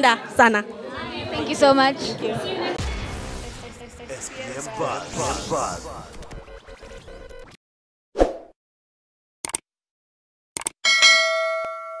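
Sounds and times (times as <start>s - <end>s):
notification bell ding: 10.9s - 12.0s.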